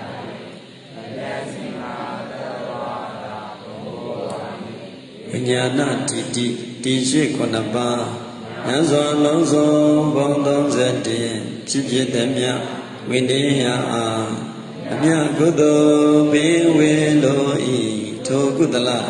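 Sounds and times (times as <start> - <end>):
man chanting: 0.6 - 19.0.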